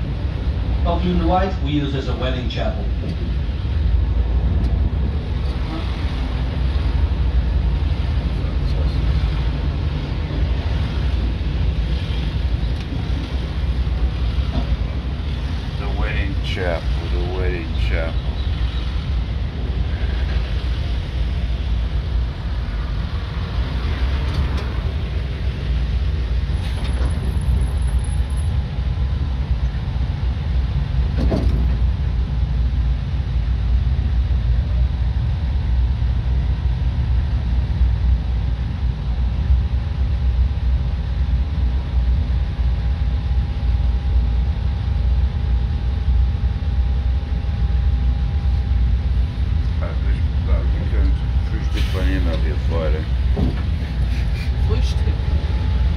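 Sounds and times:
bus engine rumbling and idling: 0.0 - 55.9
faint steady whine: 0.0 - 55.9.

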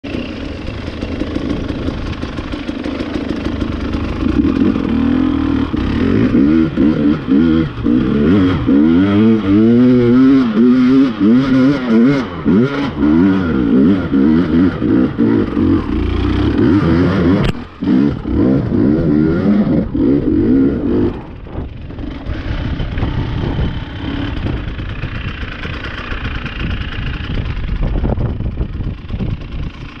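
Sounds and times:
dirt bike engine idling: 0.0 - 30.0.

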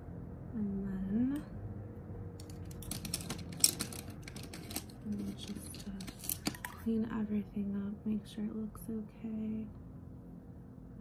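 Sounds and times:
makeup items clicking on tabletop: 2.4 - 6.8.

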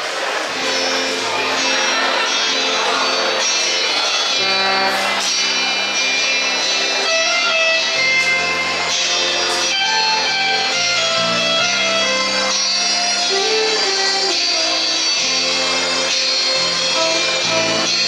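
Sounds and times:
guitar: 0.0 - 18.0
bass line: 4.3 - 18.0.

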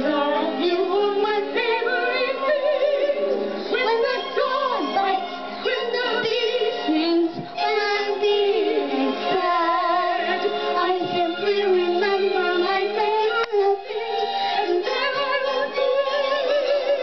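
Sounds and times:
girl singing into microphone: 3.7 - 14.0.

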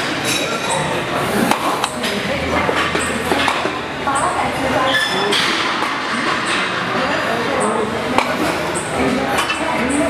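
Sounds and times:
busy gym din: 0.0 - 10.0
indistinct voices: 0.0 - 10.0.

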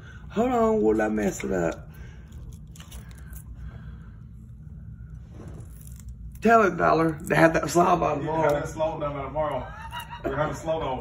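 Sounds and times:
parrot crunching cabbage: 0.8 - 4.5, 5.4 - 7.6.

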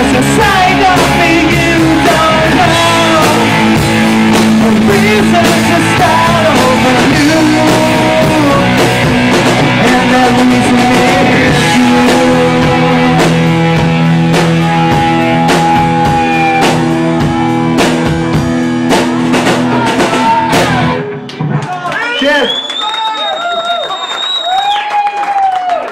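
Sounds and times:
drum hits: 0.0 - 21.8
live rock band playing: 0.0 - 22.5
audience shouting: 14.7 - 17.0, 19.6 - 25.9
long high whistle: 22.2 - 25.0.

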